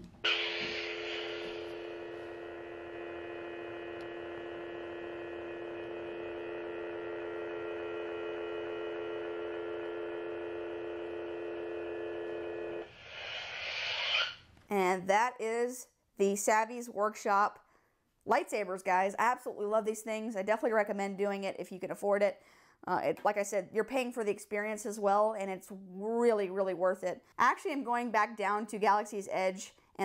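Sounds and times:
electronic hum: 0.0 - 14.3
toy lightsaber hiss: 0.3 - 1.8, 12.9 - 14.4.

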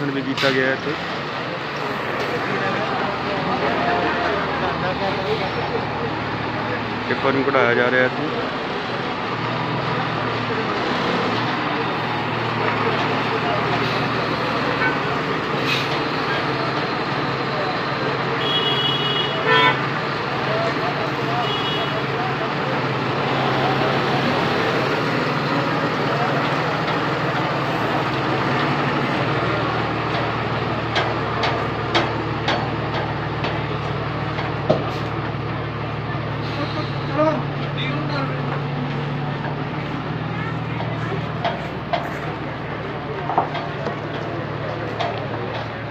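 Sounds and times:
diesel truck engine running: 0.0 - 45.9
street noise: 0.0 - 45.9
vehicle horn toots: 18.4 - 19.8, 21.4 - 22.0
background voices: 22.0 - 45.9.

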